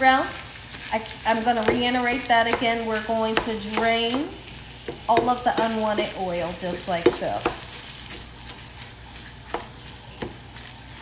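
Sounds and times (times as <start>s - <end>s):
meat sizzling in a frying pan: 0.0s - 11.0s.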